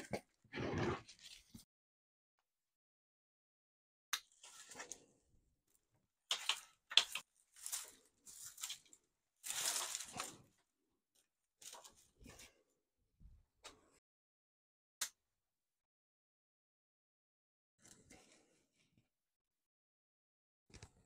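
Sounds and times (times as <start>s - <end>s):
cane matting rustling and crackling: 7.5s - 10.5s.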